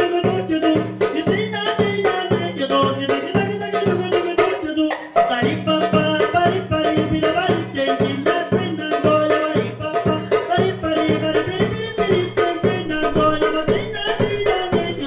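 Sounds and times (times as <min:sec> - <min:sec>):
goblet drum fast rhythm: 0:00.0 - 0:15.0
man singing into microphone: 0:00.0 - 0:15.0.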